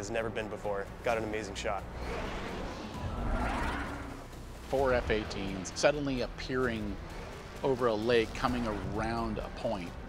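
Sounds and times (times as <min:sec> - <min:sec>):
low rumble: 0:01.8 - 0:08.8
rising whine: 0:02.0 - 0:04.8.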